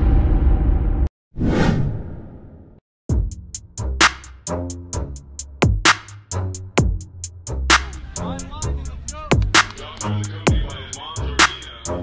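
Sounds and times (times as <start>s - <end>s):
whoosh swish: 1.4s - 2.7s.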